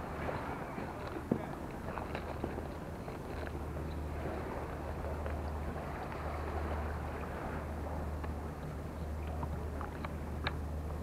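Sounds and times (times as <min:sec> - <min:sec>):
steady low hum: 0:00.0 - 0:11.0
faint light ticks: 0:08.2 - 0:10.6.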